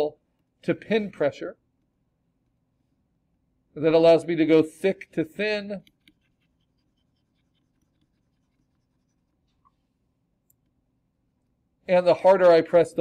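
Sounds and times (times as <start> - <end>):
faint low room hum: 0.0 - 13.0.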